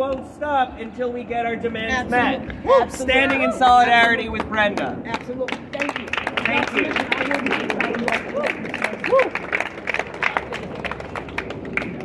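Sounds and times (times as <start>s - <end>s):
scattered hand clapping: 4.3s - 12.0s.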